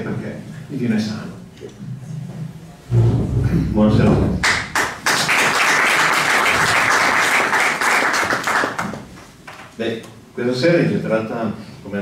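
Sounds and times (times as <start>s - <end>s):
audience applauding: 4.4s - 9.1s.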